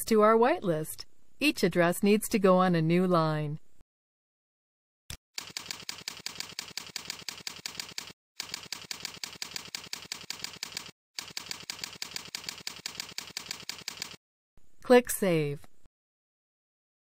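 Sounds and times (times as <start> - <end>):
keyboard typing: 5.4 - 14.2.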